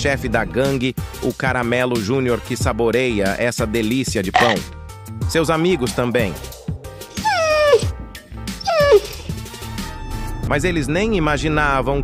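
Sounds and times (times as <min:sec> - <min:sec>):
dog whining: 0:04.4 - 0:04.6, 0:05.9 - 0:09.6.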